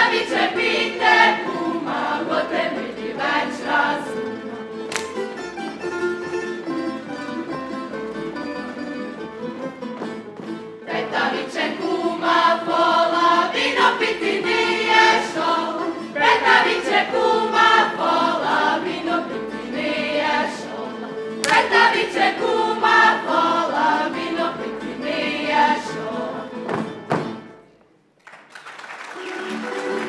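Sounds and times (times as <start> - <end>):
group singing in unison: 0.0 - 4.4, 10.8 - 27.0
string ensemble playing: 0.0 - 26.5, 29.2 - 30.0.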